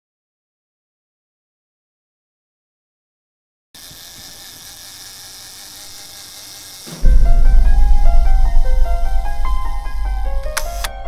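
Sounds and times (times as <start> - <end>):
low whirring hiss: 6.9 - 11.0.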